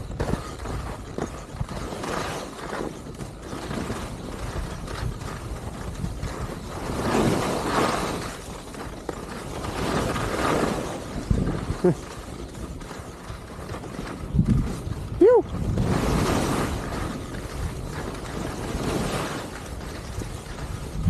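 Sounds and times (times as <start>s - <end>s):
skis scraping over snow: 0.0s - 21.0s
wind rumbling on microphone: 0.0s - 21.0s.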